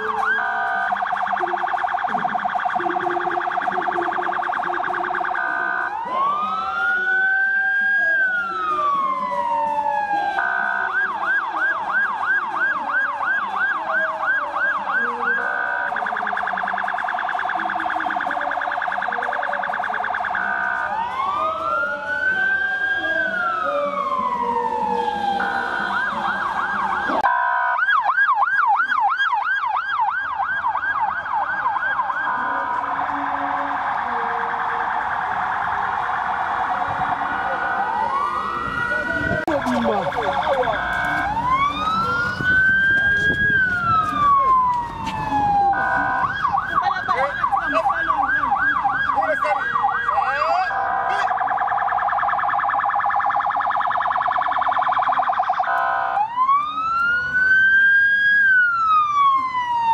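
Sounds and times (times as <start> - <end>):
electronic siren yelping and wailing: 0.0 - 59.9.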